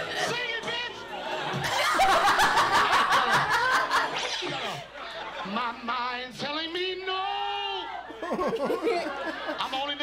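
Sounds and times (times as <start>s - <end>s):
man and woman laughing: 1.7s - 4.9s, 8.1s - 9.8s.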